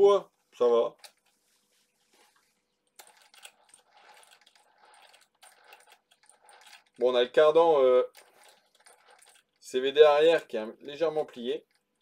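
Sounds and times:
toy car chassis clicking and rattling: 2.8 - 12.0.

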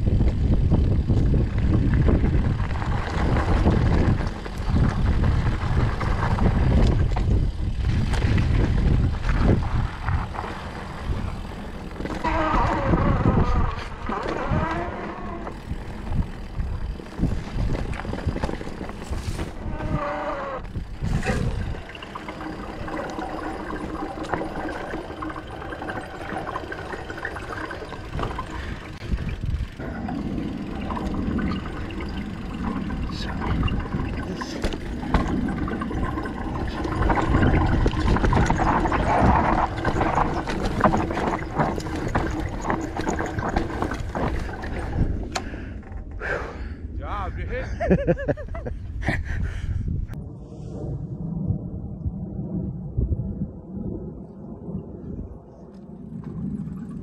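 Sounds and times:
tyres rolling on dirt: 0.0 - 46.2
bike rattling over bumps: 0.0 - 46.8
wind on microphone: 0.0 - 57.0.

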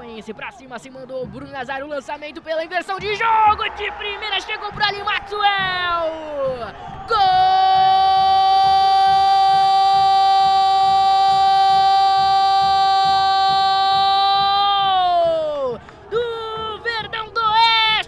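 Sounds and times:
commentator shouting words: 0.0 - 18.0
commentator's drawn-out goal cry: 2.9 - 18.0.

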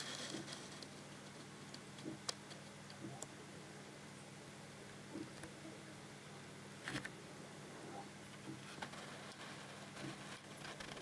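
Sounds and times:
aquarium pump hum: 0.0 - 11.0.

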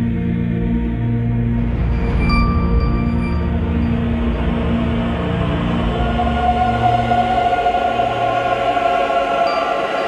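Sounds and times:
choir holding sustained chord: 0.0 - 10.0.

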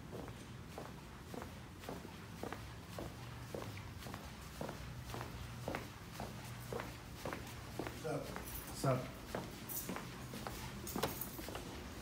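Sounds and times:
footsteps on hard tiled floor: 0.0 - 12.0
steady low hum: 0.0 - 12.0.

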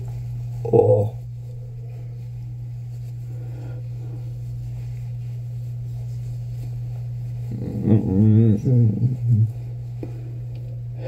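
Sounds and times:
steady low hum: 0.0 - 11.0
man humming: 0.6 - 1.2, 7.4 - 9.8.

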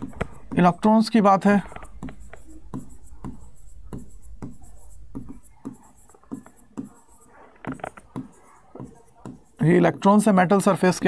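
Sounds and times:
chalk strokes on blackboard: 0.0 - 11.0.

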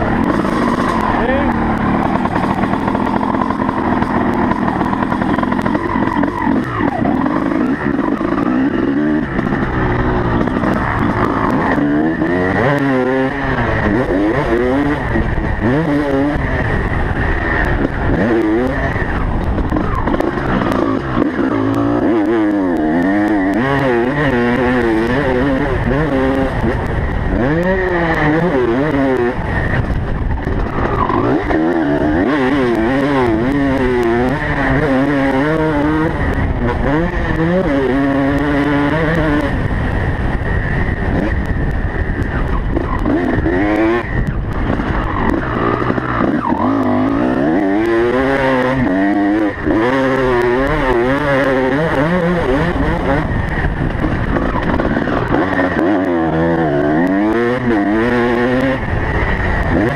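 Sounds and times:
motocross bike engine revving: 0.0 - 59.9.

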